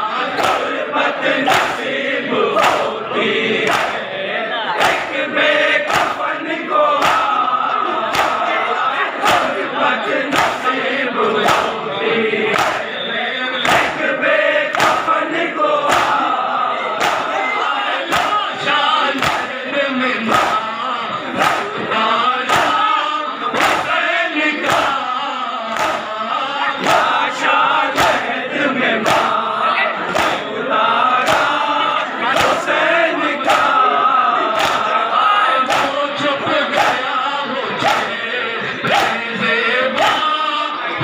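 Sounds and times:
crowd of men chanting: 0:00.0 - 0:41.0
hands slapping chests: 0:00.4 - 0:00.7, 0:01.5 - 0:01.9, 0:02.6 - 0:02.9, 0:03.6 - 0:04.0, 0:04.8 - 0:05.1, 0:05.8 - 0:06.2, 0:07.0 - 0:07.3, 0:08.1 - 0:08.5, 0:09.2 - 0:09.6, 0:10.3 - 0:10.7, 0:11.4 - 0:11.8, 0:12.5 - 0:12.9, 0:13.6 - 0:14.0, 0:14.7 - 0:15.1, 0:15.8 - 0:16.2, 0:17.0 - 0:17.3, 0:18.1 - 0:18.4, 0:19.1 - 0:19.5, 0:20.2 - 0:20.6, 0:21.4 - 0:21.8, 0:22.5 - 0:22.8, 0:23.5 - 0:23.9, 0:24.6 - 0:25.0, 0:25.7 - 0:26.1, 0:26.8 - 0:27.1, 0:27.9 - 0:28.2, 0:29.0 - 0:29.3, 0:30.1 - 0:30.4, 0:31.2 - 0:31.6, 0:32.3 - 0:32.6, 0:34.5 - 0:34.9, 0:35.6 - 0:36.0, 0:36.7 - 0:37.0, 0:37.8 - 0:38.2, 0:38.9 - 0:39.2, 0:40.0 - 0:40.3.

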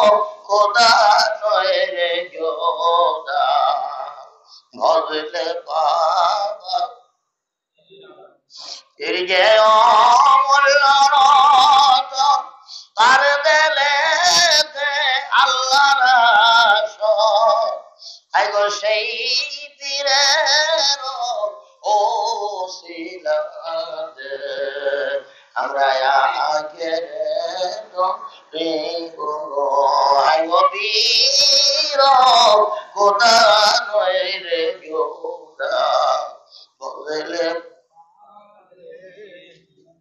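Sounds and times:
man singing into a microphone: 0:00.0 - 0:07.0, 0:08.6 - 0:39.7
man chanting devotional song: 0:00.0 - 0:07.1, 0:07.8 - 0:40.0.

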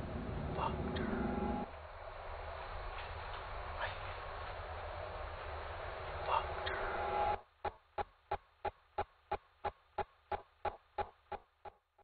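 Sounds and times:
noisy film soundtrack: 0:00.0 - 0:11.8.

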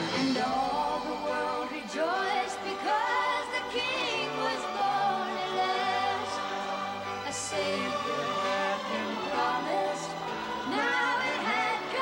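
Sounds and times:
choir singing held notes: 0:00.0 - 0:12.0.

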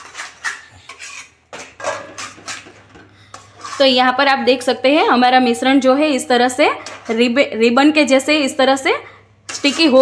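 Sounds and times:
metal spatula scraping a steel pan: 0:00.0 - 0:04.2, 0:06.7 - 0:07.4, 0:09.4 - 0:10.0.

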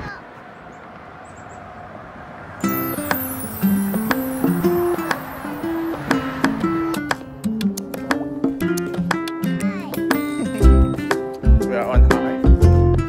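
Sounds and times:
strummed string instrument music: 0:02.6 - 0:13.0.

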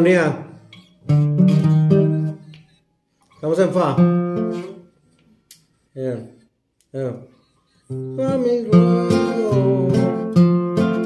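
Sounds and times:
classical guitar chords: 0:00.8 - 0:02.5, 0:03.7 - 0:04.9, 0:07.9 - 0:11.0.

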